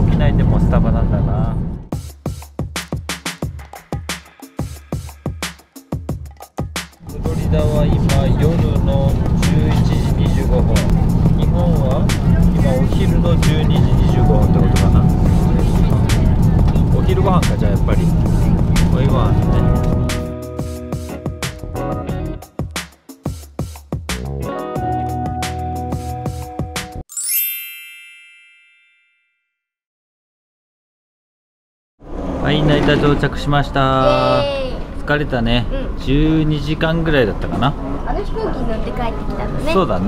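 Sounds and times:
airliner cabin drone: 0:07.1 - 0:20.2
bell-like chime: 0:27.1 - 0:29.6.

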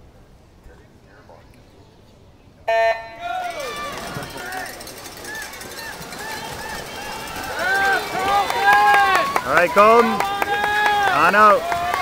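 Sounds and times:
spectators cheering and shouting: 0:02.7 - 0:12.0.

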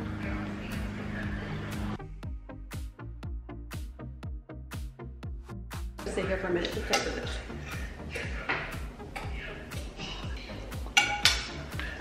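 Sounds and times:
background music with steady beat: 0:00.0 - 0:12.0
fork clinking on plate: 0:11.0 - 0:11.6.

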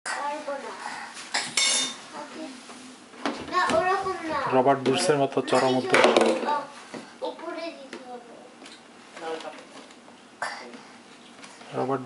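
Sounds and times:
plastic tubs clattering: 0:03.3 - 0:06.6.

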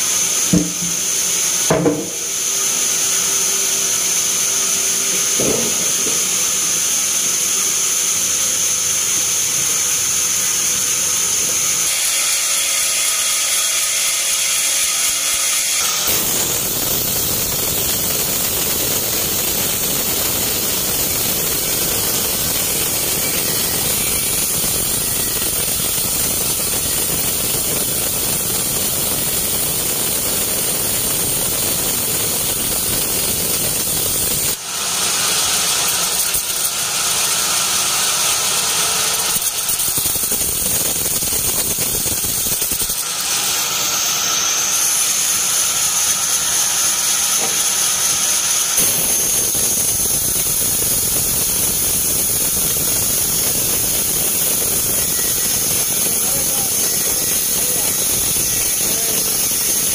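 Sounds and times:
band saw hissing through log: 0:00.0 - 0:26.5, 0:43.0 - 0:59.9
mill machinery running: 0:15.1 - 0:59.9.

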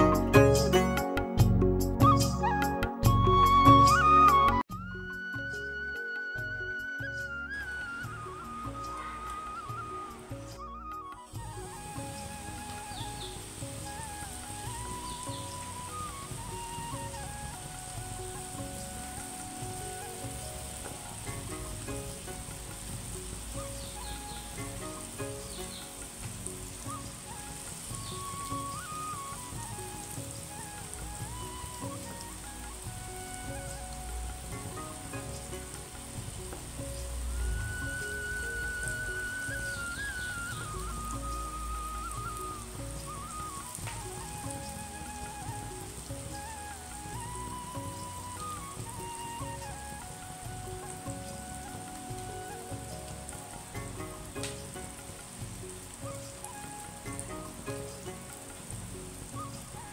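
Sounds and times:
background music: 0:00.0 - 0:59.9
fritters sizzling in hot oil: 0:00.0 - 0:59.9.

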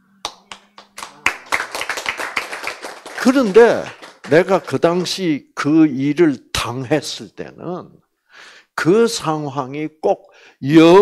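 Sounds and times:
audience applause: 0:00.3 - 0:05.1.

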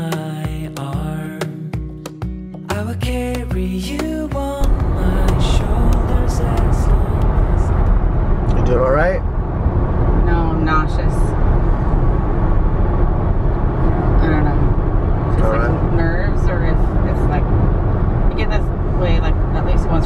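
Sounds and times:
road and tyre noise in car: 0:04.4 - 0:20.0.

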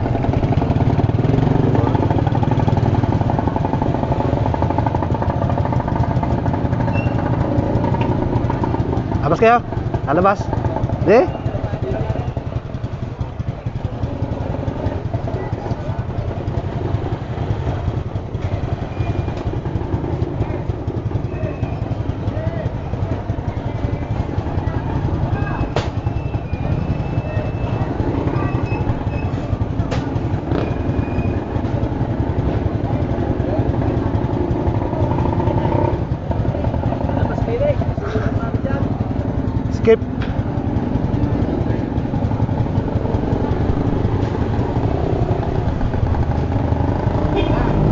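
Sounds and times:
motorcycle engine idling: 0:00.0 - 0:47.9
people talking: 0:09.2 - 0:16.9, 0:21.3 - 0:30.7, 0:34.8 - 0:40.0, 0:47.3 - 0:47.9.

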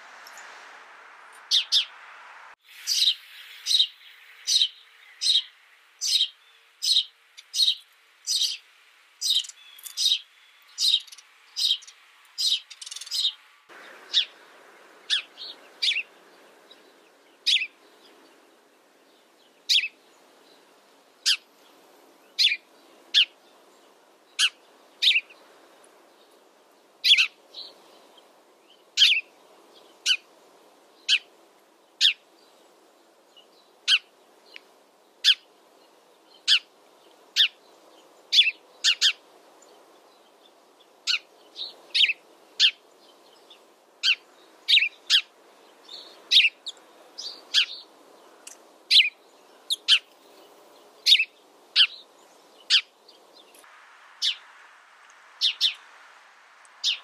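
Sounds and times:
sparrows chirping: 0:01.4 - 0:02.0, 0:02.6 - 0:54.5, 0:55.3 - 0:55.9, 0:56.7 - 0:57.0.

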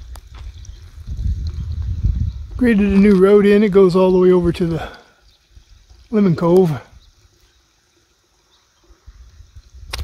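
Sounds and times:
rumble on microphone: 0:00.0 - 0:03.4.

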